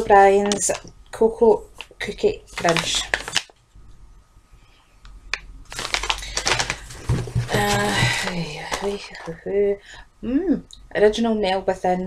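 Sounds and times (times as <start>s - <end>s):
packaging rustling and crinkling: 2.5s - 3.5s, 5.7s - 9.4s.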